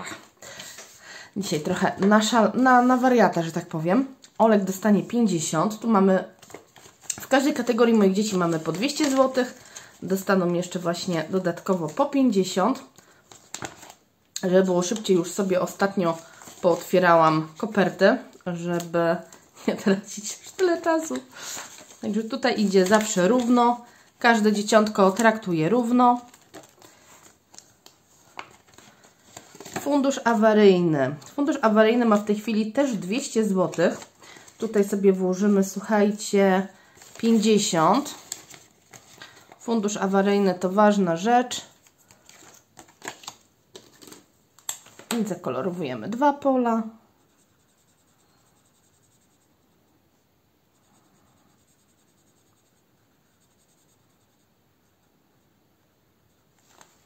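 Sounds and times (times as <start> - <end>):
plastic envelope rustling: 5.7 - 30.5, 31.1 - 40.6, 41.6 - 45.5, 56.6 - 57.0
marker scratching on paper: 47.2 - 49.8, 50.7 - 54.5.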